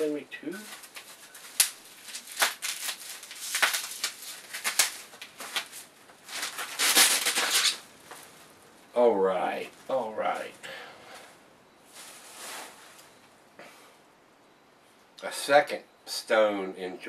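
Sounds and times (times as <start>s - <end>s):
bubble wrap crinkling: 0.0s - 8.9s, 11.9s - 13.2s.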